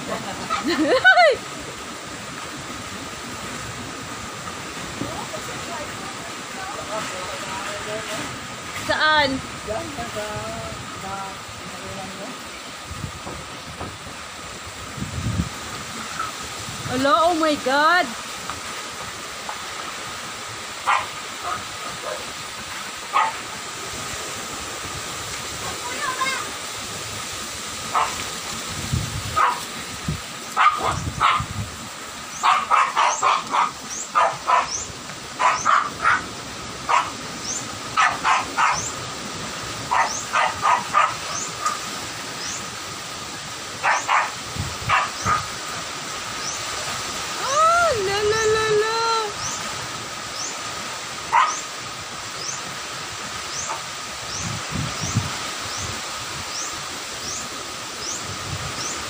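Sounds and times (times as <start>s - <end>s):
rain: 0.0s - 59.0s
strong storm wind: 0.0s - 59.0s
dog barking: 20.8s - 22.3s, 23.1s - 23.5s, 27.9s - 28.2s, 29.3s - 29.7s, 30.5s - 31.5s, 32.4s - 34.8s, 35.4s - 36.3s, 36.9s - 37.2s, 38.0s - 39.0s, 39.9s - 41.8s, 43.8s - 45.6s, 51.3s - 51.6s.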